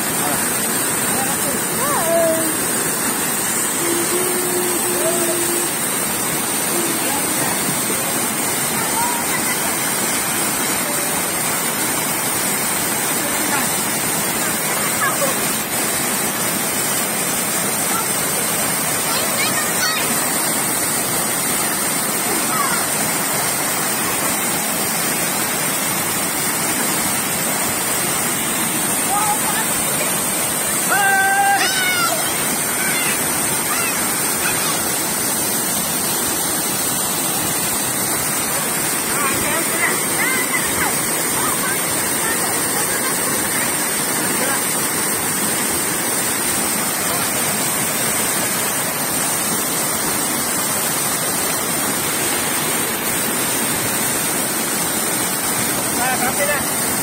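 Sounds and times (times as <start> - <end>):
waterfall rushing water: 0.0 - 57.0.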